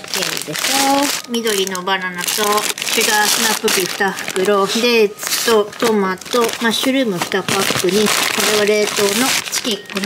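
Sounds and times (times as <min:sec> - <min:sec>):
plastic bags crinkling: 0:00.0 - 0:10.0
woman talking: 0:00.0 - 0:10.0.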